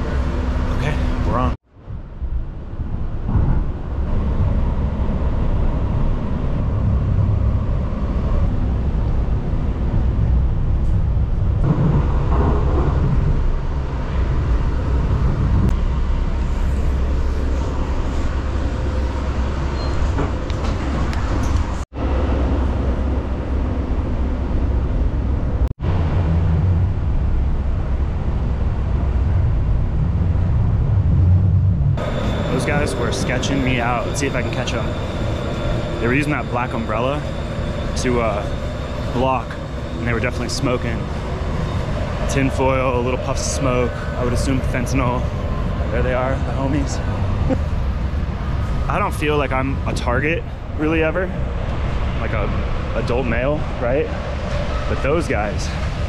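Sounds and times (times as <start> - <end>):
light rail train rumbling: 0.0 - 56.0.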